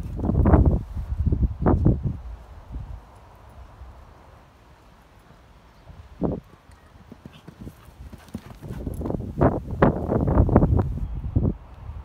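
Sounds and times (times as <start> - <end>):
horse hoofbeats: 6.4 - 9.6.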